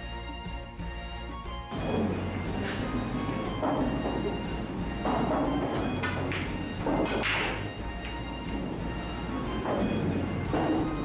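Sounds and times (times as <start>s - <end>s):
background music: 0.0s - 11.0s
billiard balls clacking: 1.7s - 11.0s
cue ball cracking into balls: 2.6s - 8.8s.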